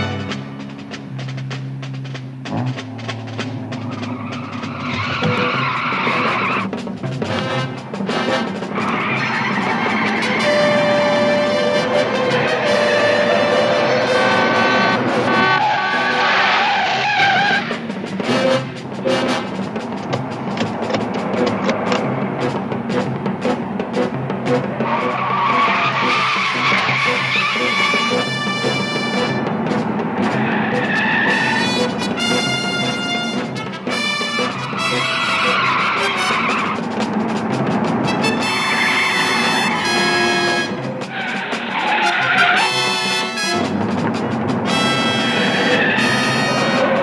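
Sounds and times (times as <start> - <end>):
car engine: 0.0 - 47.0
orchestral chase music: 0.0 - 47.0
tyres skidding: 0.0 - 47.0.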